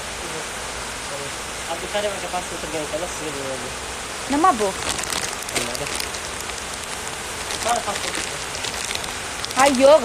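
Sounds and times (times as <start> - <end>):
steady hissing noise: 0.0 - 10.0
woman's voice: 4.3 - 6.0, 9.4 - 10.0.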